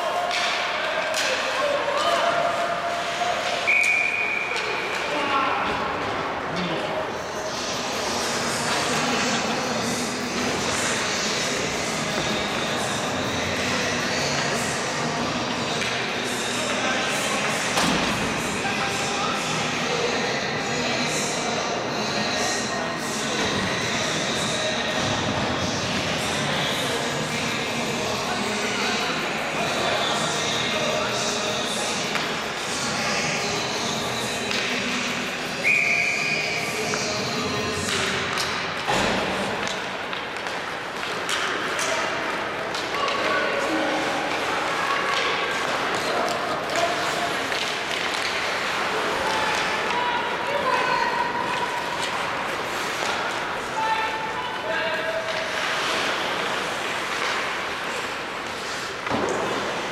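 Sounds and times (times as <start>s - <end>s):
shrill whistle: 3.7s - 4.6s, 35.6s - 36.7s.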